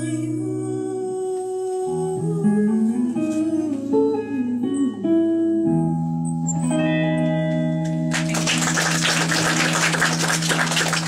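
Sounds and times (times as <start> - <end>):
electric guitar note ringing: 4.4 - 9.8
audience clapping: 7.8 - 11.0.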